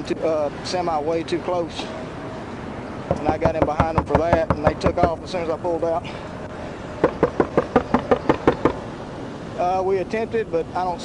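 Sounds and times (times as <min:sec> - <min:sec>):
rapid sharp taps: 0:03.1 - 0:05.2, 0:07.0 - 0:08.8.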